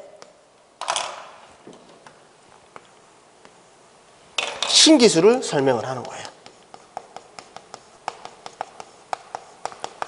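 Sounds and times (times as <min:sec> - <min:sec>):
chalk tapping on chalkboard: 0:05.6 - 0:10.0.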